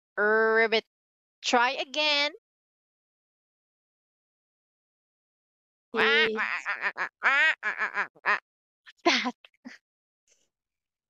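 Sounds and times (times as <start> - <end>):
duck quacking: 6.0 - 8.4.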